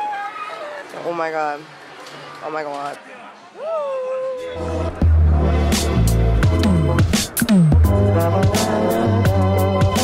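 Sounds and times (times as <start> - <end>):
low bass music: 4.6 - 10.0.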